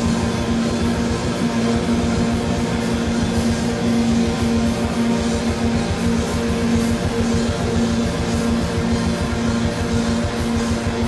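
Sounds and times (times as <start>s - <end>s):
bass guitar: 0.0s - 11.0s
fast drumming: 0.0s - 11.0s.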